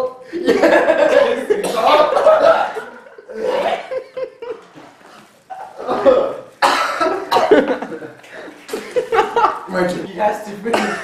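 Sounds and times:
man coughing and gagging: 0:01.2 - 0:02.9, 0:05.8 - 0:08.0, 0:10.7 - 0:11.0.

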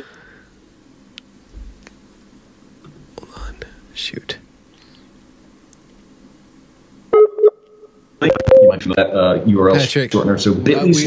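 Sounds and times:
faint room hum: 0:00.0 - 0:11.0.

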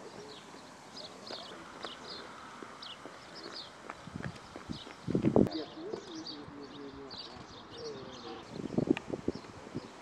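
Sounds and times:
birds chirping: 0:00.0 - 0:10.0
footsteps jogging on grass: 0:01.3 - 0:06.1.

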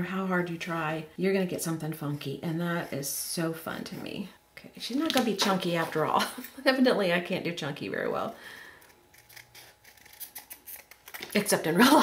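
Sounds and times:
scissors cutting cardboard: 0:08.8 - 0:11.4.

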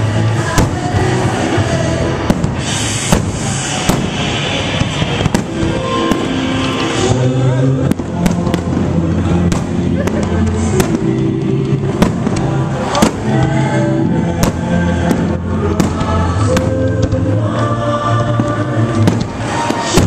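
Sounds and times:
fireworks bursting: 0:00.0 - 0:20.0
music playing: 0:00.0 - 0:20.0.

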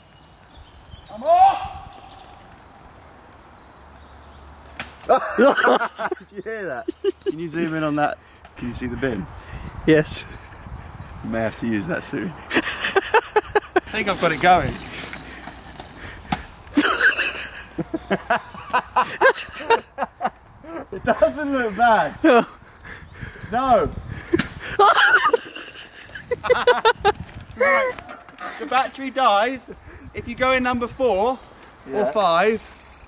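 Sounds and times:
person laughing: 0:05.1 - 0:07.4, 0:16.7 - 0:23.0, 0:24.3 - 0:28.0.

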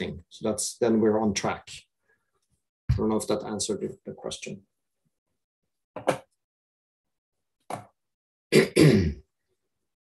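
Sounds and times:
man clearing his throat: 0:08.5 - 0:09.2.

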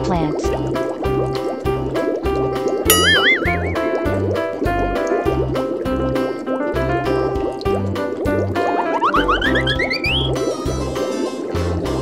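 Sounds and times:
bouncy children's music: 0:06.0 - 0:12.0
cartoon sound effect rising in pitch: 0:09.0 - 0:10.7.

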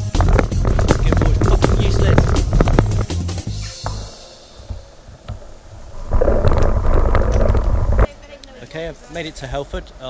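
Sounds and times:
man talking: 0:00.8 - 0:02.4.

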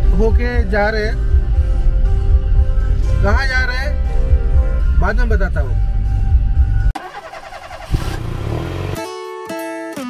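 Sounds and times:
vehicle engine running: 0:07.0 - 0:09.0.

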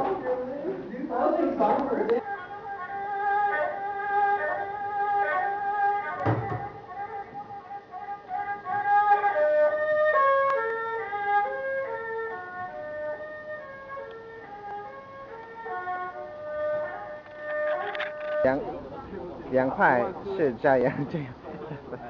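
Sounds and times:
erhu playing slow melody: 0:02.2 - 0:18.6.

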